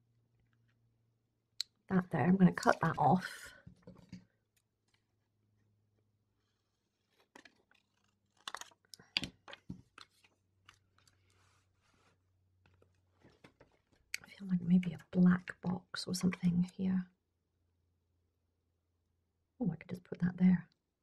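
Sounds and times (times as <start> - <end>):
paper stickers rustling and clicking: 7.0 - 11.4.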